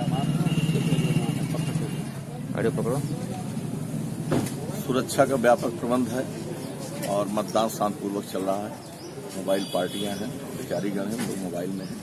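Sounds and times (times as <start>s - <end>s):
vehicle engine humming: 0.0s - 8.8s.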